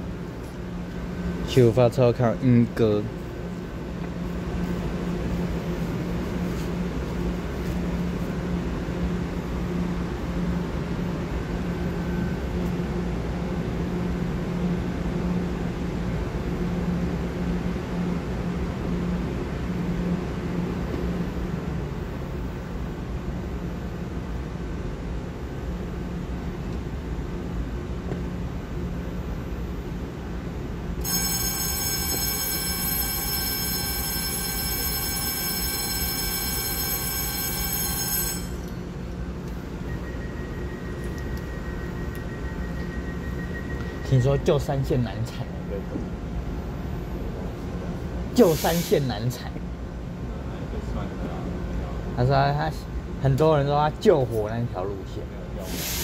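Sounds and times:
train low hum: 0.0s - 56.0s.

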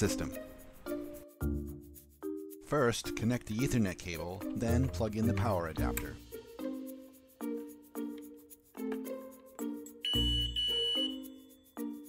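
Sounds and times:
background music: 0.0s - 12.0s
high-pitched electronic beep: 10.0s - 11.4s.

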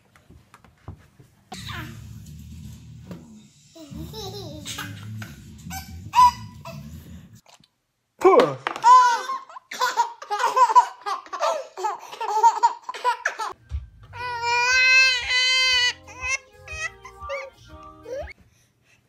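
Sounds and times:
low hum: 1.6s - 7.4s
babies laughing: 3.8s - 5.1s, 8.8s - 13.6s.

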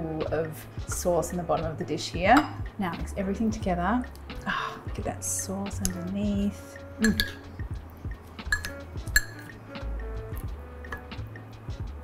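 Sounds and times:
background music with low bass: 0.0s - 12.0s
chopsticks clicking against ceramic bowl: 7.0s - 7.4s, 8.5s - 9.4s.

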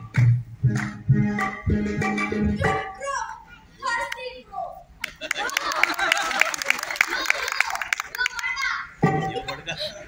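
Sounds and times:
children speaking: 2.5s - 6.1s, 6.7s - 10.0s.

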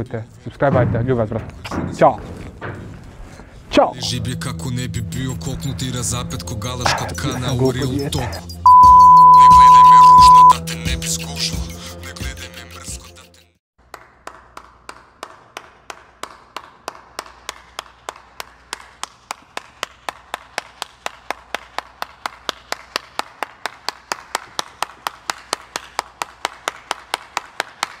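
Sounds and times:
person clapping hands: 13.8s - 28.0s.

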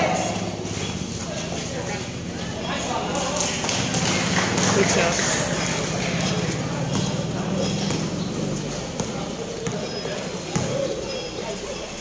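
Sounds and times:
voices of players and spectators: 0.0s - 12.0s
basketball bouncing on concrete: 5.6s - 11.2s.

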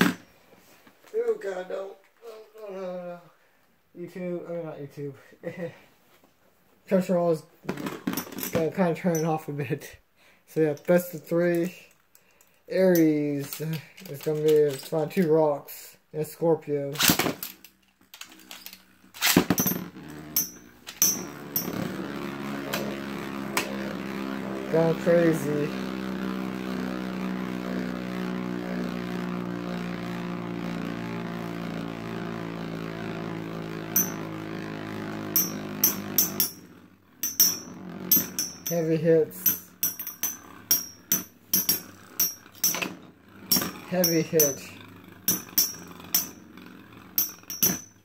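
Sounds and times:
spinning tops whirring: 17.0s - 48.0s.

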